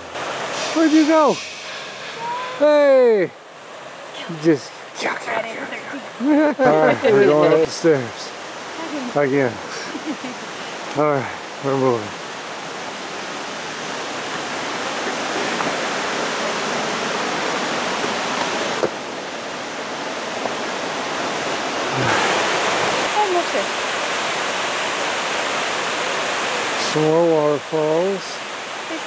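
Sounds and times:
waterfall rushing: 0:00.0 - 0:29.0.

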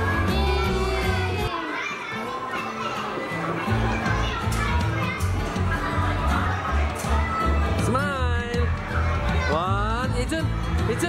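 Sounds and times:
children's voices: 0:00.0 - 0:07.9, 0:08.6 - 0:09.7.

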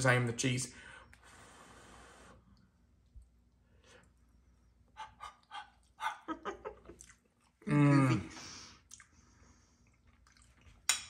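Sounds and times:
man blowing on food: 0:01.2 - 0:02.5.

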